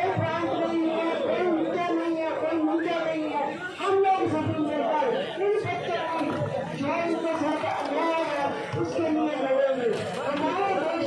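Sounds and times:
overlapping conversation: 0:00.0 - 0:11.0.

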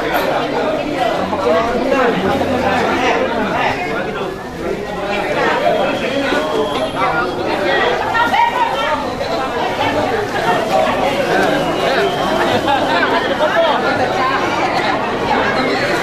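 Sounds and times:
crowd chatter: 0:00.0 - 0:16.0.

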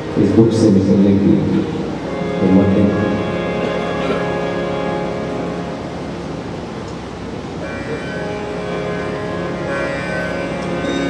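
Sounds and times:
harmonium drone: 0:00.0 - 0:11.0
noisy room hum: 0:00.0 - 0:11.0.

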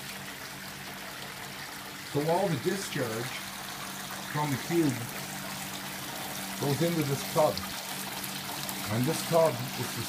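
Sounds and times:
pump humming: 0:00.0 - 0:10.0
water trickling: 0:00.0 - 0:10.0.

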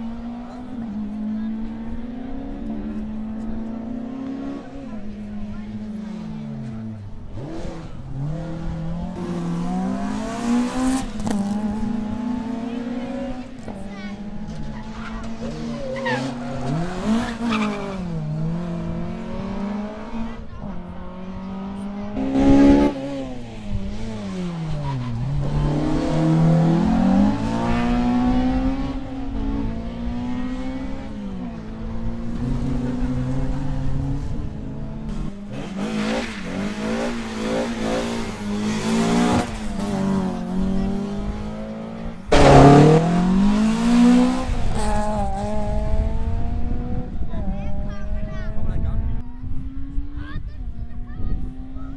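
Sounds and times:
rally car engines revving: 0:00.0 - 0:51.9
car passing close: 0:14.3 - 0:48.2.

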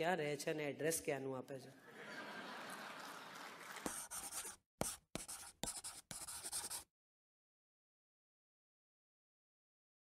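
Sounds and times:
brush scratching strokes: 0:03.8 - 0:06.9.

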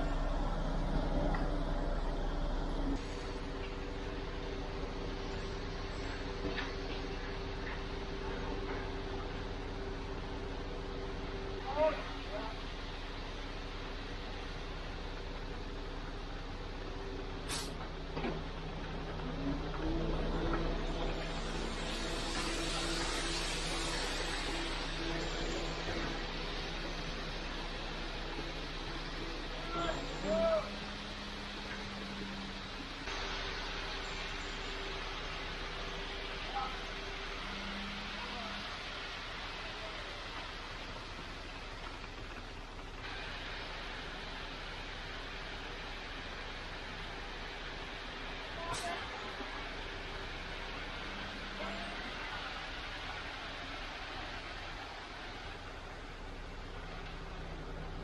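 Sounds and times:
truck engine running: 0:00.0 - 0:58.0
hissing rush: 0:20.8 - 0:40.9.

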